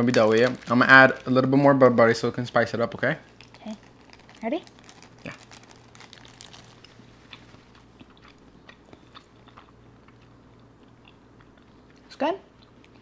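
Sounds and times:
chewing soft food: 0:03.3 - 0:13.0.

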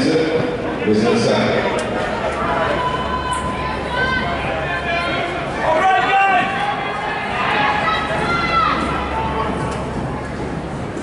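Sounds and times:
people shouting in indoor hall: 0:01.9 - 0:09.9.

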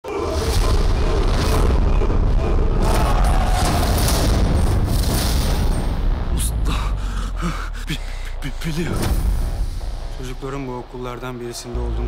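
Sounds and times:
deep low rumble: 0:00.4 - 0:12.0
sharp dramatic hits: 0:08.3 - 0:12.0.

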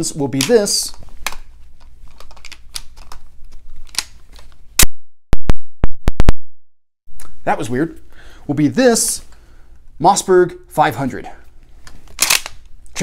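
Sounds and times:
shotgun handling clicks and rubbing: 0:00.4 - 0:04.6, 0:11.8 - 0:12.7.

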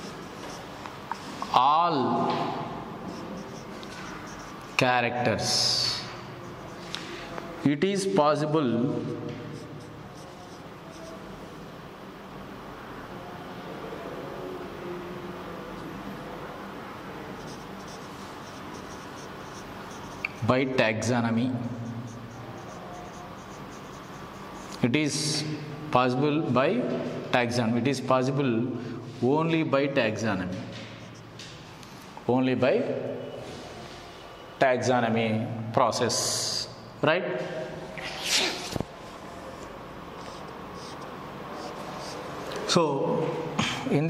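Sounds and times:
marker writing on whiteboard: 0:00.0 - 0:08.1, 0:08.9 - 0:11.6, 0:17.3 - 0:25.7, 0:30.5 - 0:31.7, 0:37.4 - 0:42.7.

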